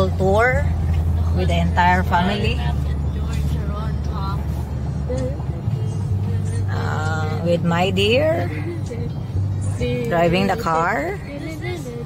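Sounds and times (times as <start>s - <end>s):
engine and road noise drone: 0.0s - 12.0s.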